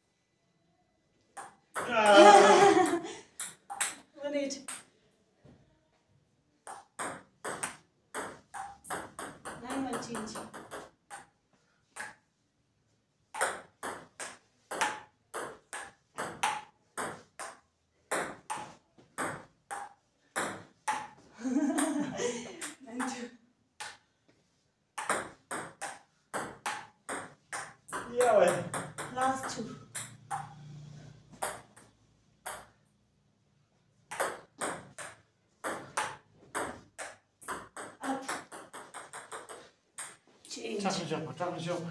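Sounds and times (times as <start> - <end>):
ping-pong ball bouncing and hit: 1.4 - 4.9, 6.6 - 12.3, 13.3 - 24.0, 25.0 - 30.6, 31.3 - 32.9, 34.1 - 40.3
table tennis ball clicking: 3.4 - 4.0, 28.7 - 30.5.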